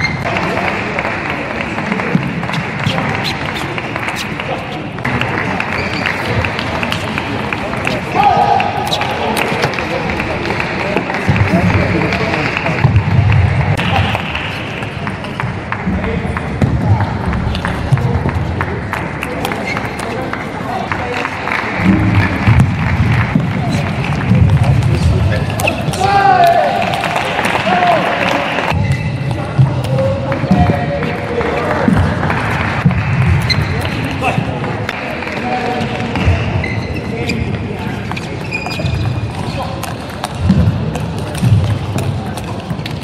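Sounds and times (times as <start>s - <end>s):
crowd chatter: 0.0s - 43.0s
crowd shouts: 8.1s - 9.4s, 25.9s - 28.8s.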